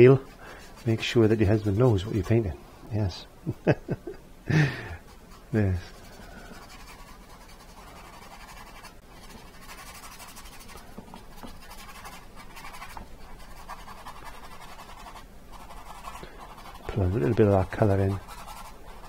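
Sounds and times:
paintbrush brushing on canvas: 0.0 - 2.6, 5.0 - 19.0.

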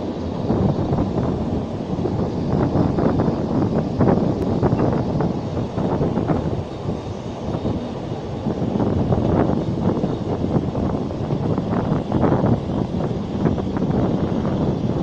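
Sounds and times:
train wheels rumbling on rail: 0.0 - 15.0
wind buffeting microphone: 0.0 - 15.0.

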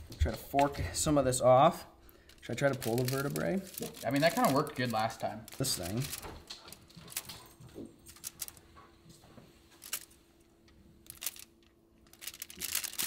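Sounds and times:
faint steady hum: 0.0 - 13.0
fork clicking and scraping on foil: 2.3 - 6.3, 12.1 - 13.0.

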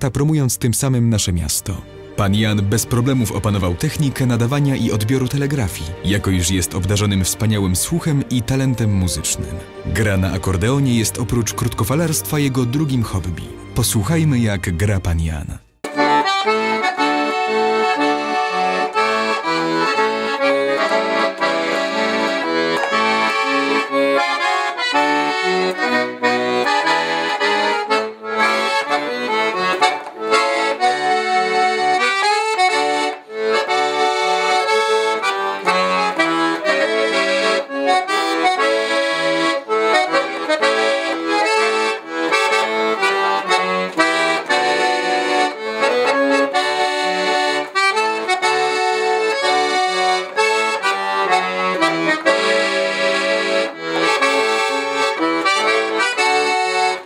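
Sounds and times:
piano accordion playing a tune: 0.0 - 57.0.

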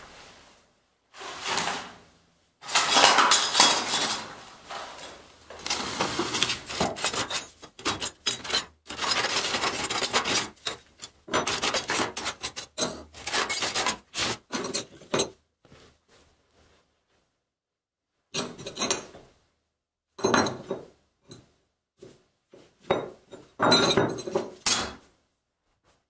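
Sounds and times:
scrap metal scraping and clinking: 2.6 - 15.1.

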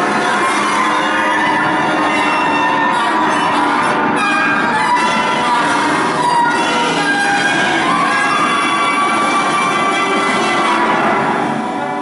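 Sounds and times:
sustained horn cluster: 0.0 - 12.0.

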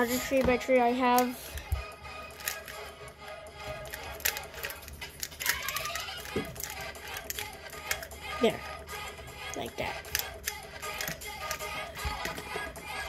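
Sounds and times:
quiet background music: 0.0 - 13.0.

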